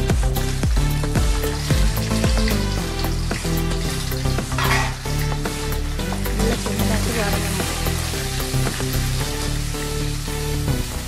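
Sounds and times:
background music with steady beat: 0.0s - 11.0s
shallots sizzling in hot oil: 0.0s - 11.0s.

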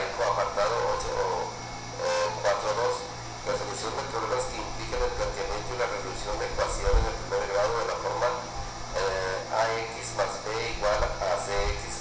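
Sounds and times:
man talking into a microphone: 0.0s - 12.0s
steady low hum: 0.0s - 12.0s.

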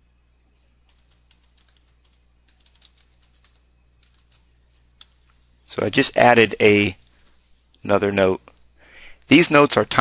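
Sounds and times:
typing on computer keyboard: 0.8s - 4.5s.

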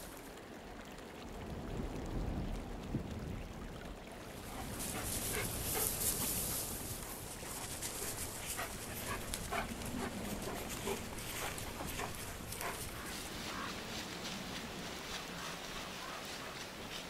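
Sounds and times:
background hiss: 4.2s - 17.0s
wolf calling: 7.1s - 13.8s.

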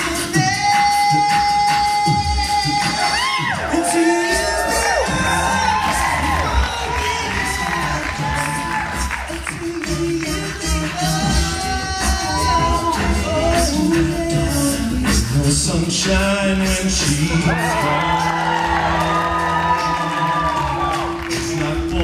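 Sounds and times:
male a cappella group singing: 0.0s - 22.0s
vocal percussion: 0.0s - 22.0s
audience cheering and whooping: 2.0s - 13.4s, 17.1s - 22.0s.

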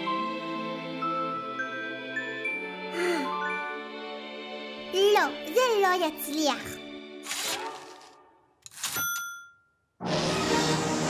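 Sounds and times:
typewriter bell ding: 8.7s - 9.8s.

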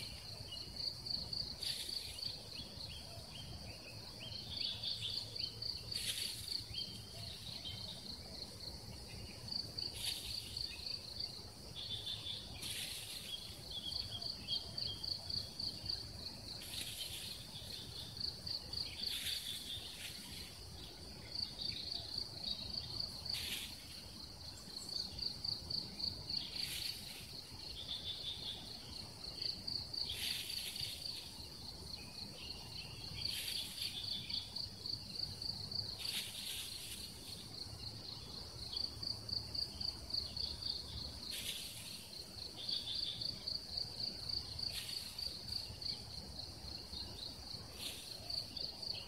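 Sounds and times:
insects trilling: 0.0s - 49.0s
short hissy rushes: 23.3s - 24.0s.

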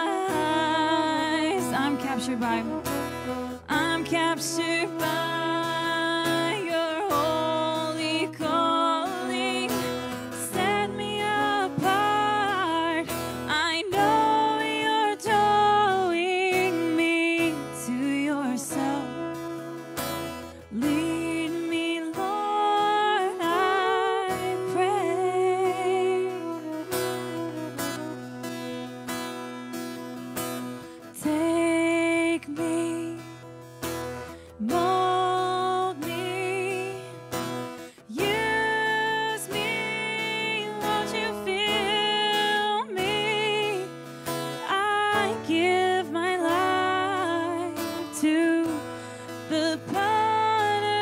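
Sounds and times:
person singing with vibrato: 0.0s - 51.0s
strummed acoustic guitar: 0.0s - 51.0s.

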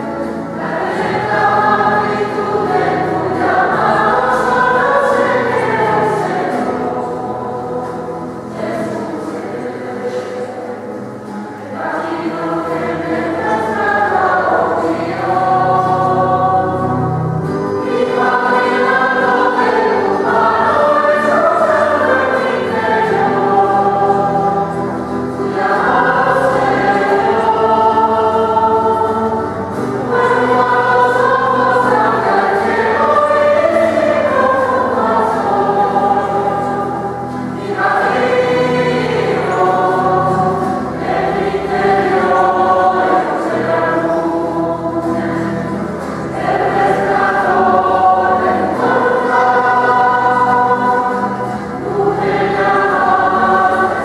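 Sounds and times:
choir singing a hymn: 0.0s - 54.0s.

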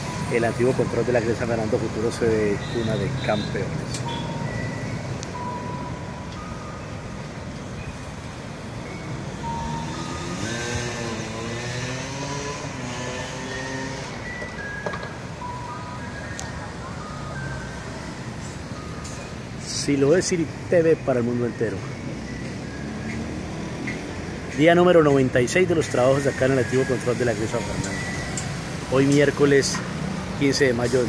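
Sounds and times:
street traffic hum: 0.0s - 31.0s
vehicle engine revving: 9.0s - 14.4s, 22.1s - 24.5s.

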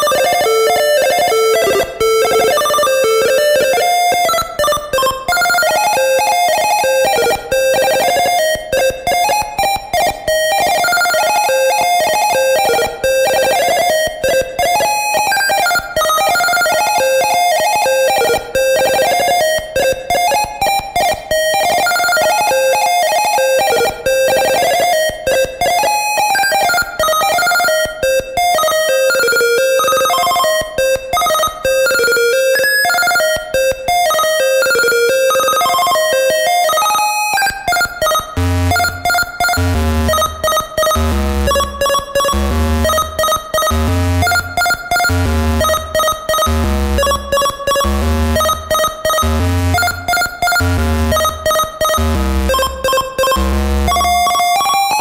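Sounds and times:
chiptune square-wave melody: 0.0s - 55.0s.

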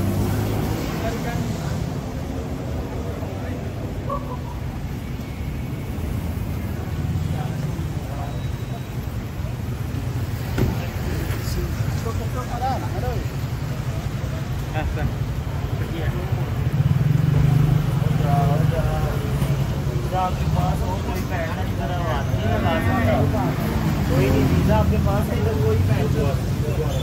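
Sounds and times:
passers-by talking: 0.0s - 27.0s
traffic rumble: 0.0s - 27.0s.

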